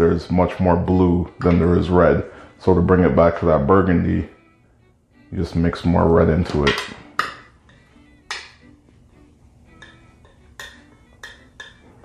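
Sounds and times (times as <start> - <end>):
metal palette knife clinking on glass: 9.8 - 11.9.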